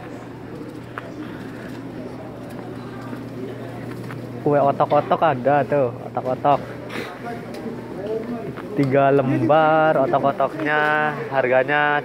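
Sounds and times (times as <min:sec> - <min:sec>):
distant crowd voices: 0:00.0 - 0:12.0
steady low hum: 0:00.0 - 0:12.0.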